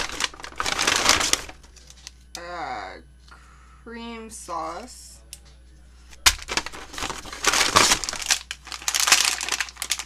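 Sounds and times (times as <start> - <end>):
plastic packaging crinkling: 0.0 - 2.2, 6.2 - 10.0.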